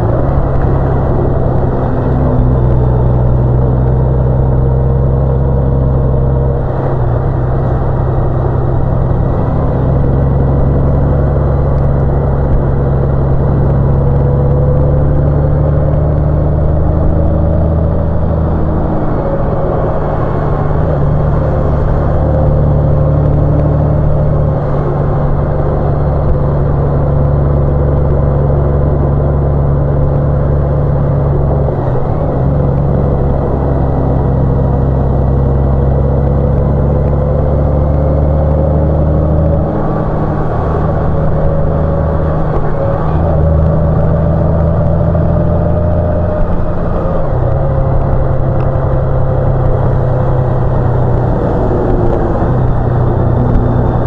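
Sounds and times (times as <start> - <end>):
motorcycle engine cruising: 0.0 - 54.0
wind and road noise: 0.0 - 54.0.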